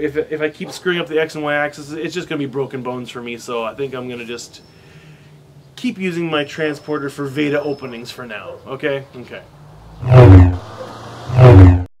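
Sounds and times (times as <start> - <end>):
deep humming pulses: 9.6 - 11.9.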